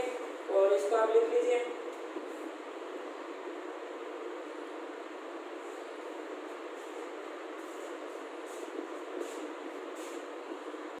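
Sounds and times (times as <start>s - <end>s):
continuous room hiss: 0.0s - 11.0s.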